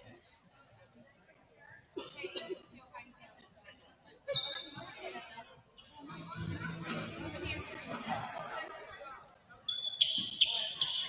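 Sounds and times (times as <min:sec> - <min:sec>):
voices and chatter: 0:00.0 - 0:11.0
sneakers squeaking on hardwood: 0:09.7 - 0:11.0.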